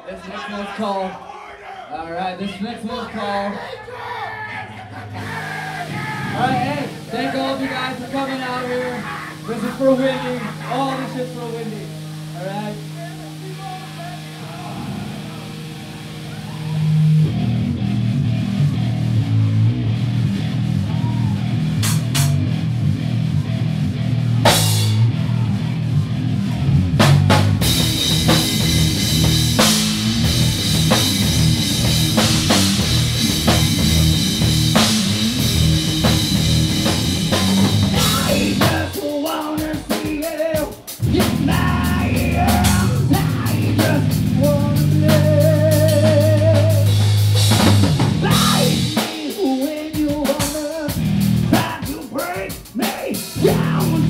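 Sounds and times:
live rock band playing: 5.0 - 54.0
electric guitar sustained note: 5.2 - 21.7.

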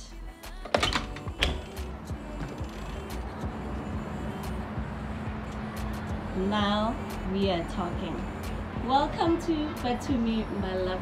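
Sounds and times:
background music: 0.0 - 11.0
door handle and latch clicking: 0.7 - 1.8
city traffic noise: 1.0 - 11.0.

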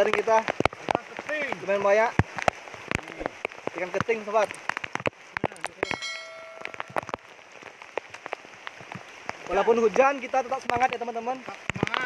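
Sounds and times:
rain falling on river: 0.0 - 12.0
sharp ticks of raindrops: 0.0 - 12.0
short ringing tone: 5.8 - 7.0.

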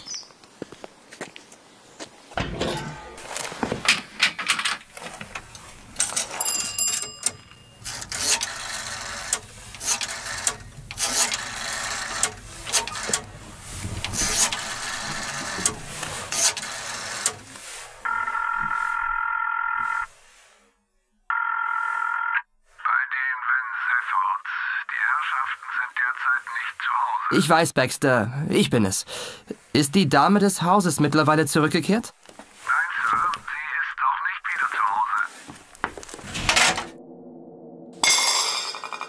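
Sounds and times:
telephone ringing through receiver: 6.0 - 13.2, 14.2 - 17.4, 18.0 - 20.1
thin voice over phone line: 22.7 - 27.5, 32.6 - 35.5.

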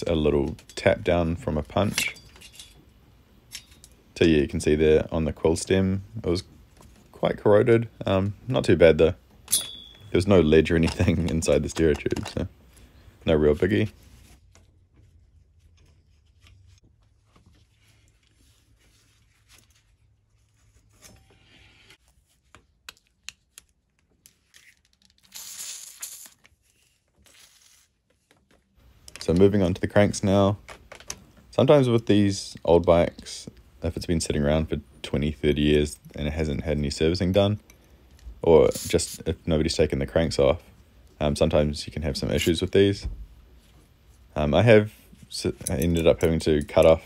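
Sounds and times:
metallic clicks and clinks: 3.5 - 4.0, 45.5 - 47.0
handling clicks and taps: 10.8 - 12.5.

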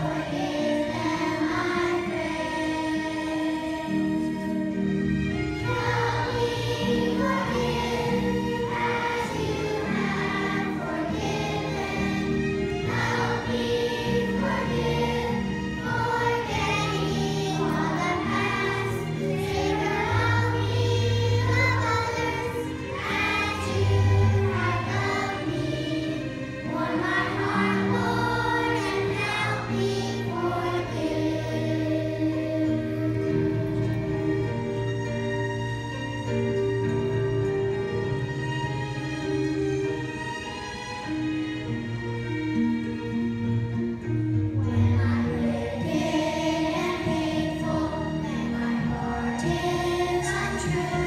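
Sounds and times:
children's choir singing: 0.0 - 34.9, 44.0 - 51.0
low accompaniment notes: 0.0 - 51.0.

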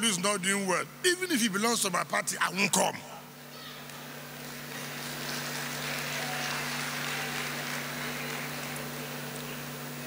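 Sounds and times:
steady low hum: 0.0 - 10.0
audience applauding: 4.4 - 10.0.

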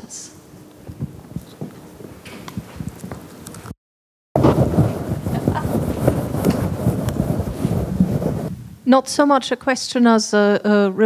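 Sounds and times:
microphone handling noise: 0.8 - 3.7, 4.4 - 8.9.

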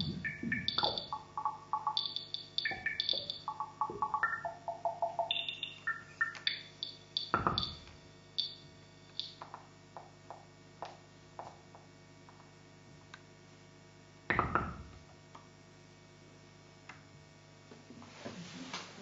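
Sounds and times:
synthesizer blips: 0.0 - 7.9
low hum: 0.0 - 9.3.

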